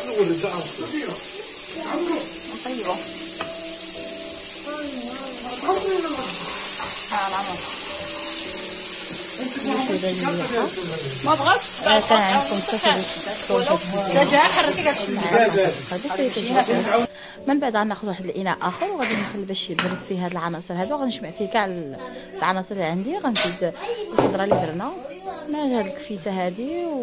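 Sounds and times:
vegetables sizzling in oil: 0.0 - 27.0.

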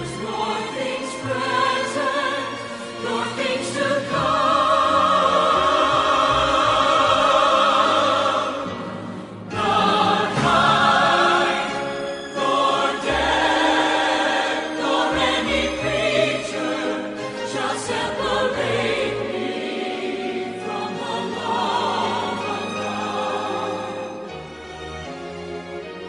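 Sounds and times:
choir singing held notes: 0.0 - 24.4.

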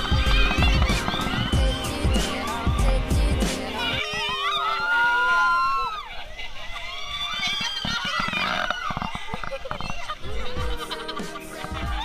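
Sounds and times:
riders screaming: 0.0 - 3.0, 3.7 - 12.0.

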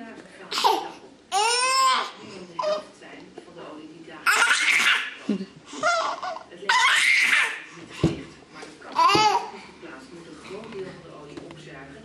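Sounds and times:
baby laughing: 4.3 - 7.6.

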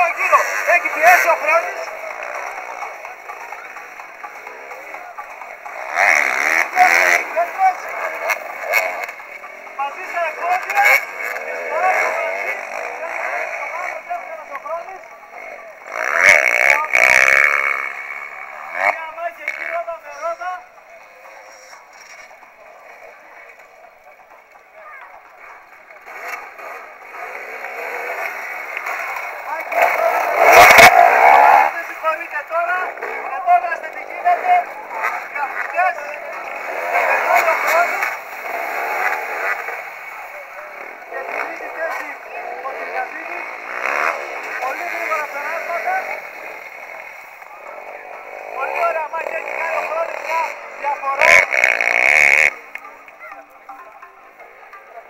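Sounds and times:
dirt bike engines revving: 0.0 - 55.0
indistinct voices: 0.0 - 55.0.

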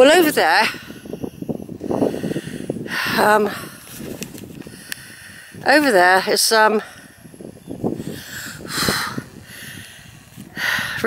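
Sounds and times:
wind rustle: 0.0 - 11.0
person breathing close to microphone: 0.7 - 5.8, 6.8 - 11.0
microphone handling noise: 1.5 - 5.8.

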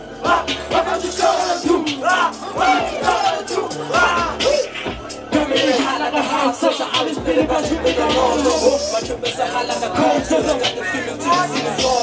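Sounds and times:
hip-hop music: 0.0 - 12.0
people shouting: 0.2 - 4.8.

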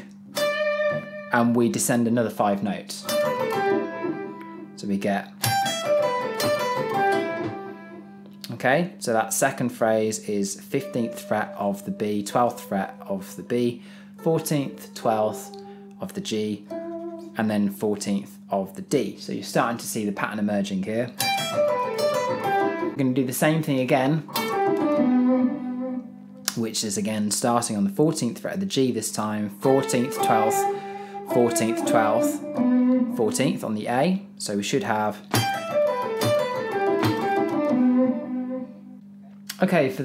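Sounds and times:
electric guitar descending run: 3.0 - 4.8, 5.4 - 8.2, 24.3 - 26.1, 29.9 - 33.6, 35.3 - 39.0.

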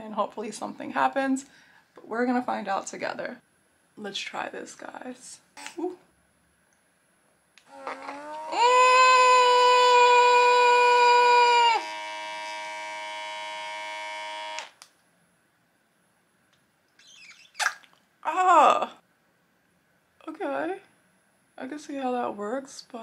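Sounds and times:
electric pump whining: 7.6 - 14.8.

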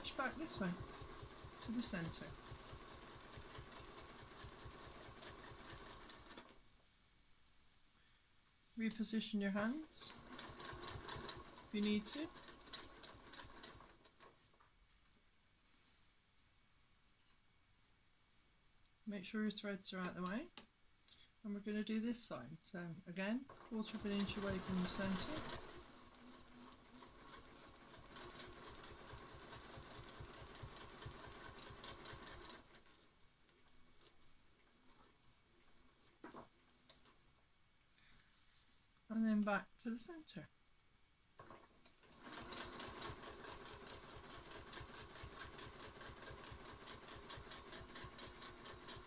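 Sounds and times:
sewing machine stitching: 0.0 - 6.6, 9.6 - 14.4, 23.4 - 33.1, 41.4 - 49.0.

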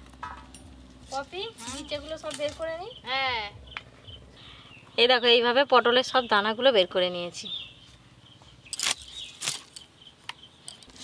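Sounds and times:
sharp food preparation noises: 0.9 - 3.0, 8.7 - 9.9.

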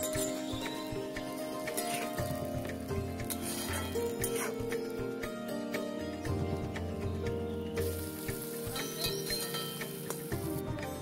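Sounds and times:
background music: 0.0 - 11.0
onions sizzling in oil: 7.7 - 11.0.

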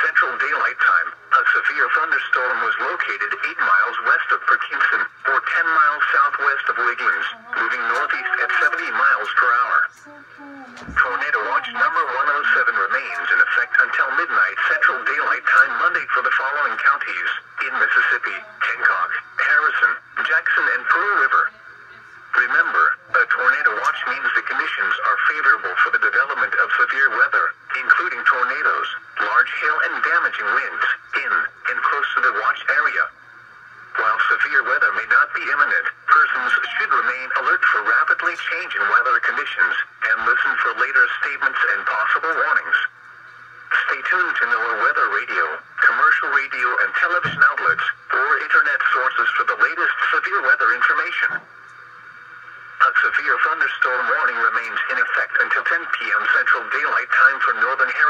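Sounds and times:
broadcast voice through small speaker: 0.0 - 58.0.

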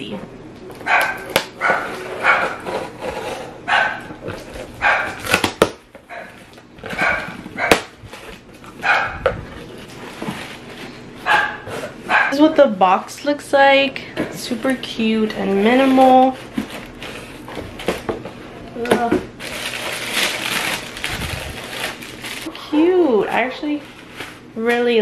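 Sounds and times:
dog barking: 0.8 - 2.6, 3.7 - 4.1, 4.8 - 5.2, 6.1 - 7.9, 8.8 - 9.3, 11.2 - 12.4.

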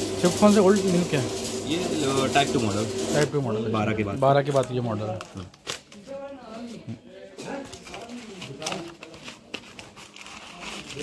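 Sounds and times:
men talking: 0.2 - 5.6.

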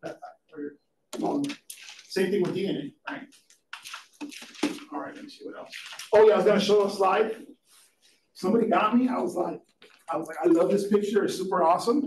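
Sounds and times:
man speaking: 0.0 - 3.5, 4.7 - 7.6, 8.4 - 12.0.

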